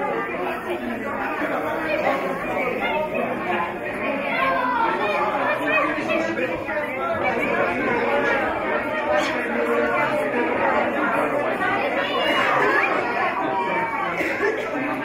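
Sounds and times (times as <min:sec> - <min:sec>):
babble of overlapping conversation: 0:00.0 - 0:15.0.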